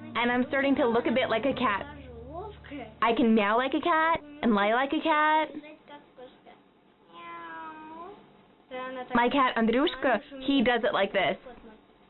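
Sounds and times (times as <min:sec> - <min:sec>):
cat meowing: 0:07.1 - 0:08.0.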